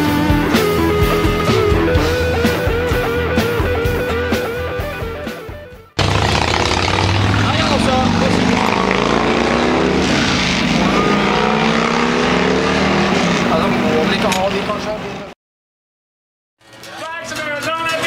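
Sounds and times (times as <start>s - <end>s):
guitar rock music: 0.0s - 8.6s
voices talking: 6.7s - 9.2s, 10.7s - 12.0s, 13.2s - 15.3s.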